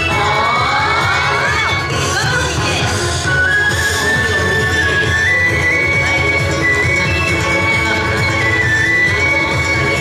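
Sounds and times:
group shouting together: 0:00.1 - 0:01.8.

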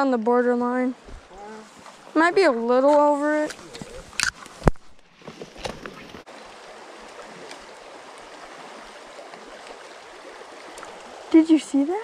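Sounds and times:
creek water running over rocks: 0:00.0 - 0:12.0.

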